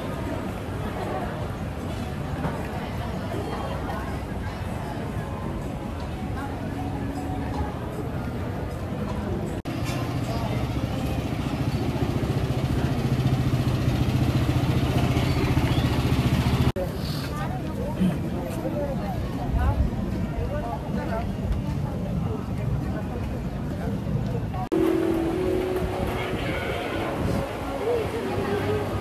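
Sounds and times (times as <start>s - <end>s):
people's voices: 0.0s - 29.0s
engine humming: 9.4s - 16.8s, 24.6s - 29.0s.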